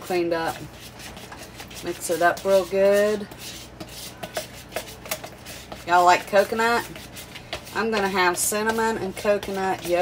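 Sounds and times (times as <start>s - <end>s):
metal spoon stirring yogurt: 0.0s - 10.0s.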